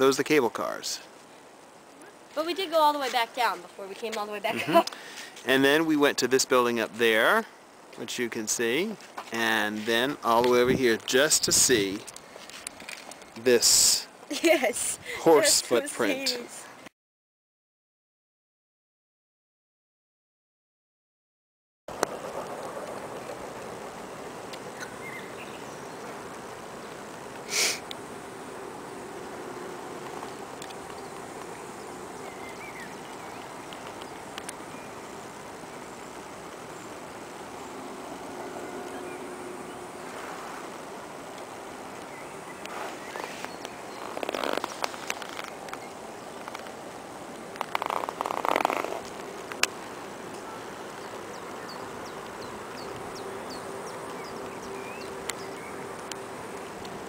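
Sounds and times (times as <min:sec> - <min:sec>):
faint steady hum: 0:22.3 - 0:44.0.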